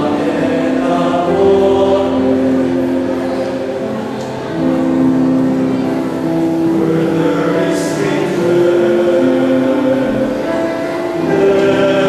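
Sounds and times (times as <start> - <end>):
male choir singing chords: 0.0 - 12.0.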